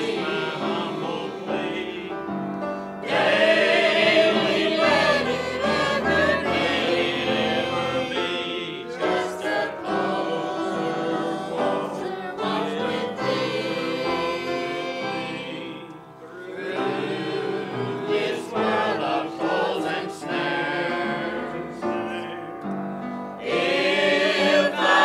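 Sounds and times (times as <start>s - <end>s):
mixed choir singing a hymn: 0.0s - 25.0s.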